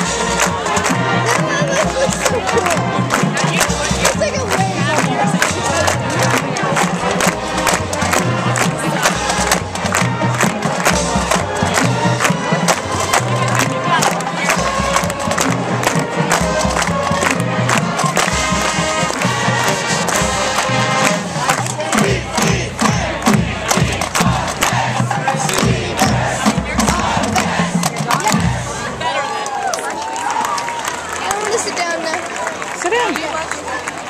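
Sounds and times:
marching band playing: 0:00.0 - 0:29.9
crowd noise: 0:00.0 - 0:34.0.

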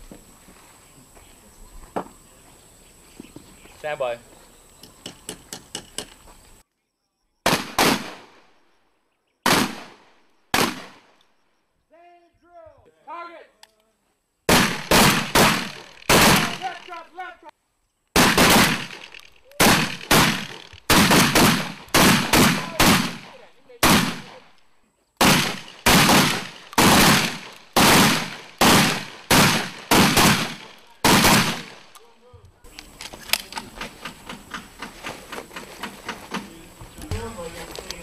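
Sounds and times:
shotgun shots: 0:07.4 - 0:08.5, 0:09.4 - 0:11.2, 0:14.5 - 0:17.0, 0:18.2 - 0:24.5, 0:25.2 - 0:31.9.

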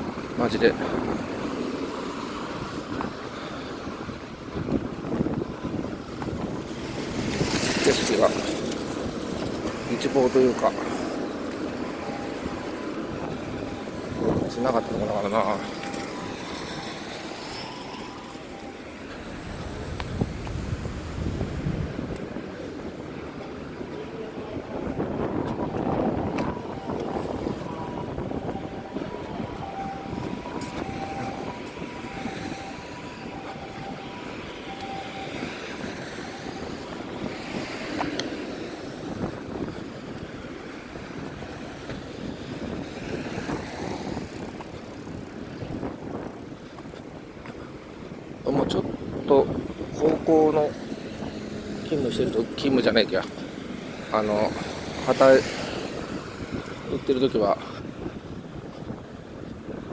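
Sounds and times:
cars passing: 0:00.0 - 0:59.9.

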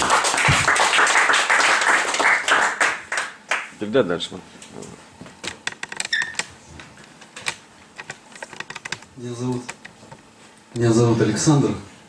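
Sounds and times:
microphone handling clicks and knocks: 0:04.7 - 0:10.3.

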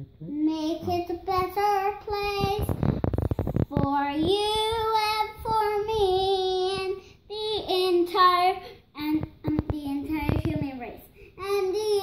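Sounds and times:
girl singing: 0:00.3 - 0:12.0
rustling and thudding noise: 0:00.7 - 0:12.0.

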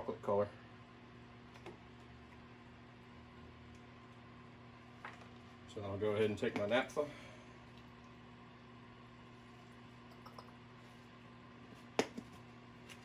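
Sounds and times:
quiet steady hum: 0:00.0 - 0:13.0.

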